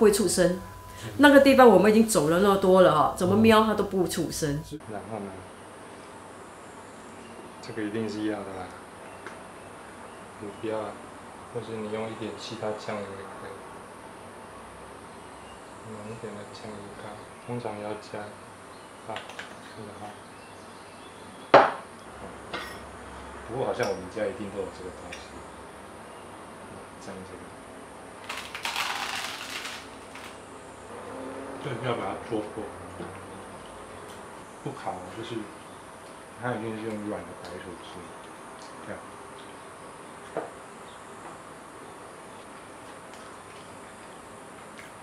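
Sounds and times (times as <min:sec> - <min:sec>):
background hum and hiss: 0:00.0 - 0:45.0
container knocking on wooden table: 0:21.6 - 0:21.8.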